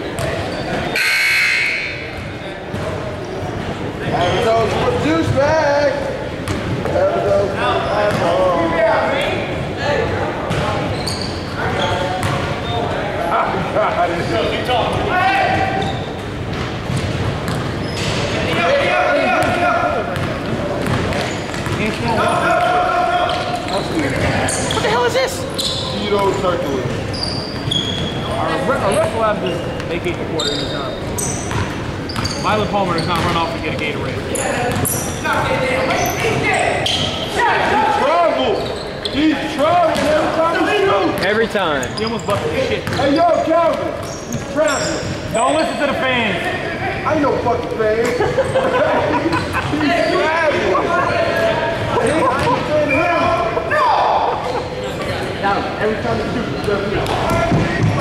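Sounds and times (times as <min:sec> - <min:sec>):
sneaker squeaks: 0:00.0 - 0:05.4, 0:06.4 - 0:09.7, 0:10.4 - 0:13.4, 0:14.2 - 0:46.4, 0:47.6 - 0:58.0
indistinct echoing voices: 0:42.4 - 0:58.0.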